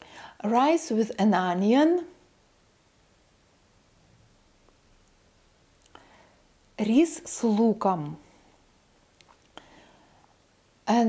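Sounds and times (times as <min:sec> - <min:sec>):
woman speaking: 0:00.4 - 0:02.2, 0:06.8 - 0:08.2.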